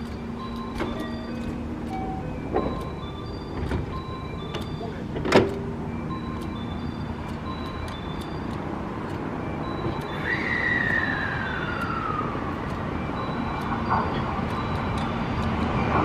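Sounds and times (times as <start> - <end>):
electric train humming: 0.0 - 16.0
falling whistle-like tone: 10.1 - 12.5.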